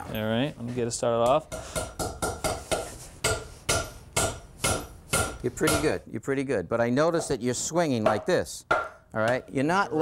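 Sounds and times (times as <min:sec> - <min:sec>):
hammer striking nail into wood: 0:01.8 - 0:05.9.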